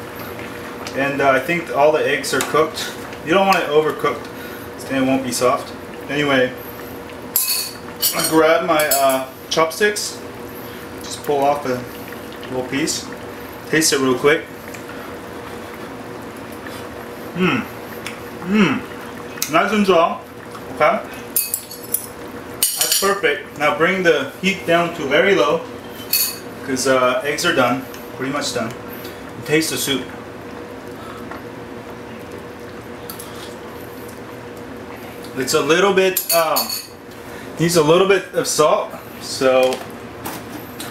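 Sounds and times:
faint hum: 0.0 - 40.9
soup boiling in a pot: 0.0 - 40.9.

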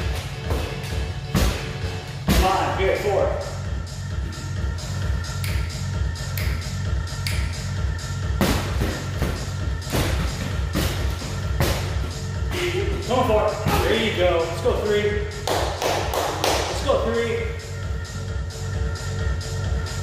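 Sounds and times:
punches thudding on punching bag: 8.4 - 13.0.

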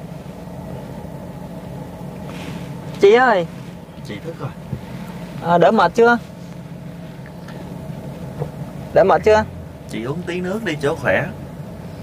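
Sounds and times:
car cabin hum: 0.0 - 12.0.

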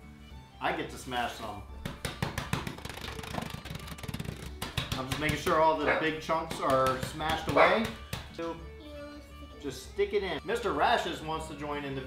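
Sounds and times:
cookies pounded in plastic bag: 1.8 - 5.5.

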